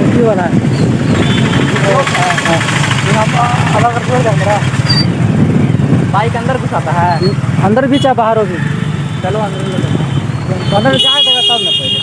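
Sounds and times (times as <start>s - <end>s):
motorcycle engine running: 0.6s - 7.9s
people talking: 1.7s - 4.7s, 6.1s - 8.6s, 9.2s - 12.0s.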